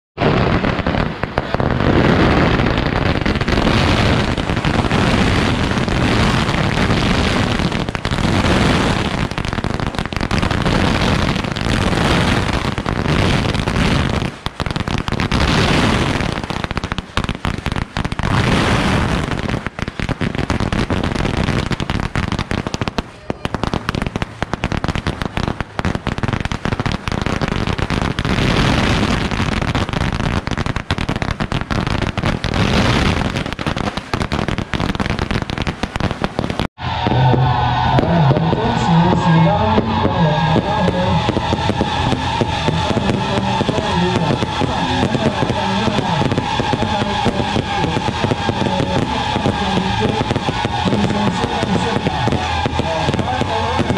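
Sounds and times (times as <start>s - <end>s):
firecrackers crackling: 0.2s - 53.9s.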